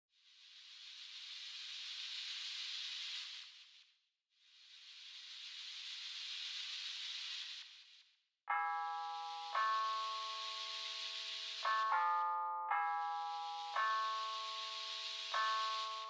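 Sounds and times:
hiss-like noise swell: 0.2s - 8.2s, 8.8s - 16.0s.

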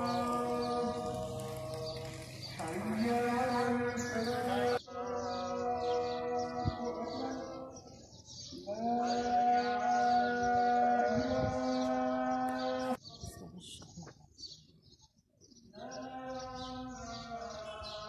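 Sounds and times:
man chanting: 0.0s - 13.0s, 15.8s - 18.0s
birds chirping: 0.0s - 18.0s.

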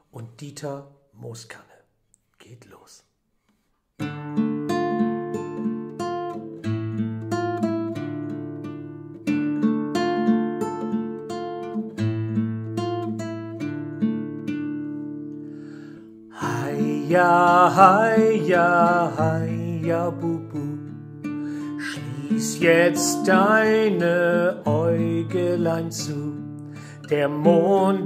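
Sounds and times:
classical guitar plucking chords: 4.0s - 28.0s
man singing: 16.4s - 20.9s, 21.8s - 28.0s.

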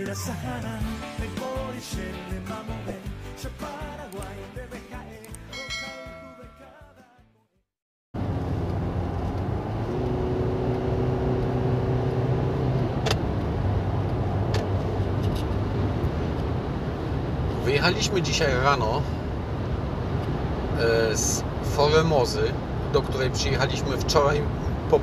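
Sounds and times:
music jingle with ringing chime: 5.5s - 7.0s
car road and engine noise: 8.2s - 25.0s.

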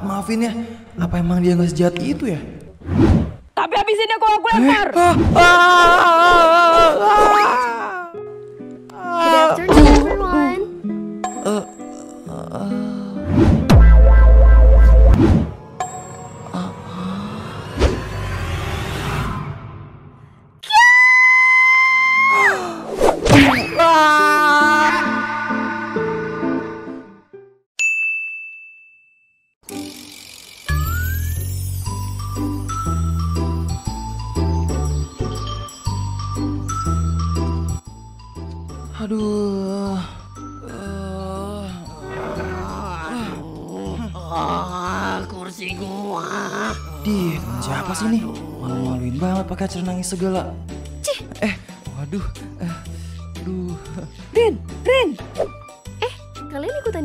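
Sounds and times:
girl crying wail: 5.4s - 8.2s, 8.9s - 10.6s, 20.6s - 22.9s, 23.7s - 26.1s, 40.7s - 46.9s
person groaning and muttering: 5.4s - 8.2s, 8.9s - 10.6s, 11.4s - 13.2s, 16.5s - 17.7s, 23.8s - 25.9s, 40.6s - 49.1s
soft background music: 6.6s - 17.0s, 29.7s - 57.0s.

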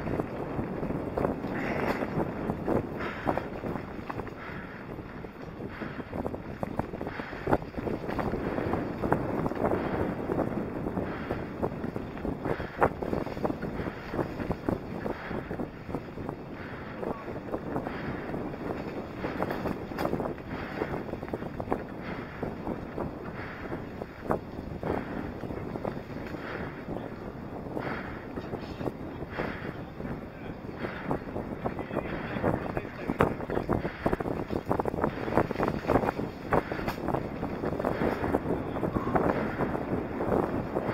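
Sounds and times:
bike knocking and rattling: 0.0s - 40.9s
wind buffeting microphone: 0.0s - 40.9s.

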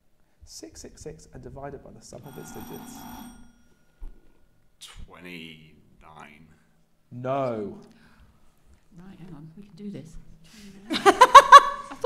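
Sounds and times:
quiz buzzer bell ringing: 2.2s - 4.0s.

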